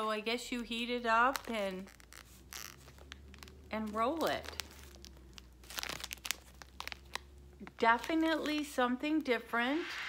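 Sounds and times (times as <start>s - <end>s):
plastic bag crinkling: 1.0s - 8.8s.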